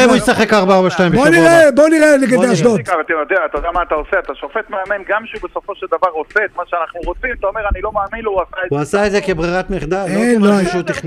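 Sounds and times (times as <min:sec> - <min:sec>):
man talking in studio: 0:00.0 - 0:11.0
man talking over telephone line: 0:01.1 - 0:11.0.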